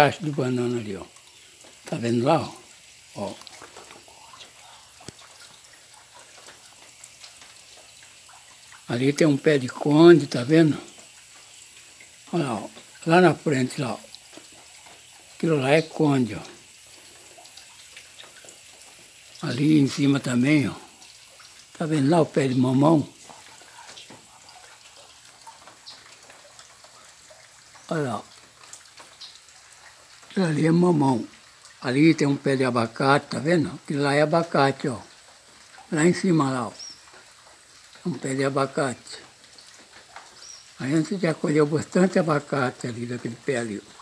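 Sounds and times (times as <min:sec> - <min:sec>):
drizzle on leaves: 0:00.0 - 0:44.0
fine rain hiss: 0:00.0 - 0:44.0
small water drips: 0:00.0 - 0:44.0.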